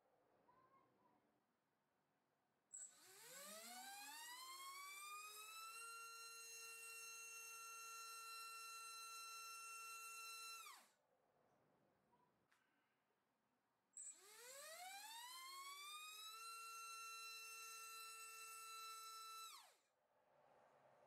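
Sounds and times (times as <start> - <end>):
drone motor whine: 2.9 - 10.9, 14.1 - 19.7.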